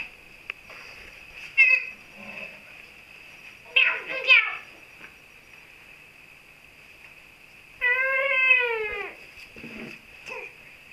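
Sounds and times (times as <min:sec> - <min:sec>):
baby wailing: 0:07.8 - 0:09.2.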